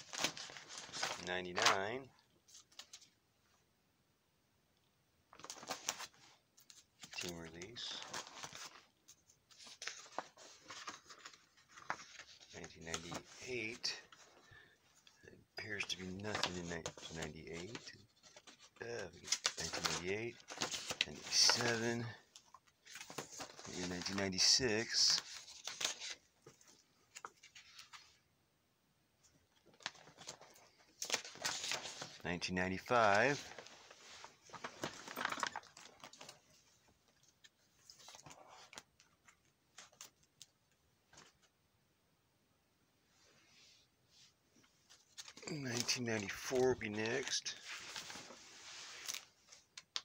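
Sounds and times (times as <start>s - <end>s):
binder pages turning: 0.0s - 3.2s, 5.3s - 28.2s, 29.3s - 41.5s, 44.6s - 50.0s
plastic sleeves rustling: 0.0s - 3.2s, 5.3s - 28.2s, 29.2s - 41.5s, 43.2s - 50.0s
small clicks and crinkles: 34.5s - 41.5s, 48.9s - 50.0s.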